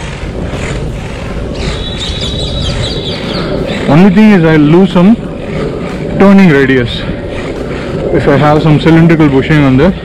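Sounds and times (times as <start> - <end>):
longboard wheels rumbling on asphalt: 0.0 - 10.0
bird chirping: 1.4 - 4.7.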